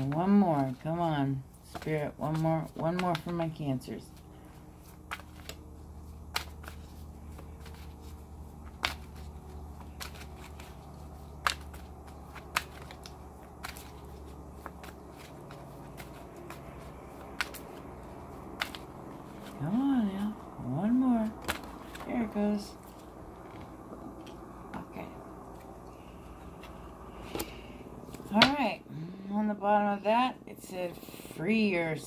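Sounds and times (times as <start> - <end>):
cards being shuffled: 0.0 - 28.7
low hum: 0.0 - 32.0.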